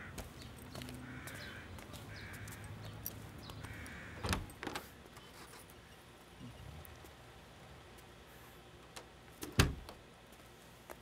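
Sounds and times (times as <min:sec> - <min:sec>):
crows cawing: 0:00.0 - 0:02.9, 0:03.5 - 0:04.5.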